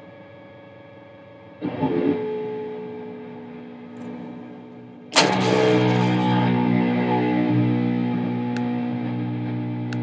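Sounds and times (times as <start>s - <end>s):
distorted electric guitar chords: 1.4s - 10.0s.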